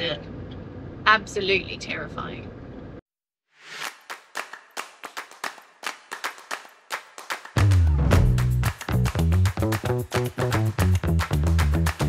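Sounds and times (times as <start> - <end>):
sharp hand claps: 3.8 - 12.0.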